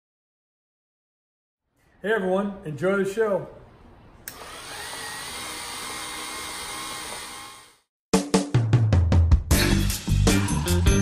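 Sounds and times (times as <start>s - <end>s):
small electric motor whirring: 4.3s - 7.9s.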